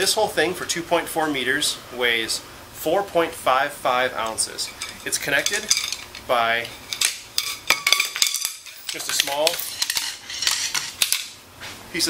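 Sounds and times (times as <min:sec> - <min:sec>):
probe sections clicking and rattling: 0:04.7 - 0:11.4.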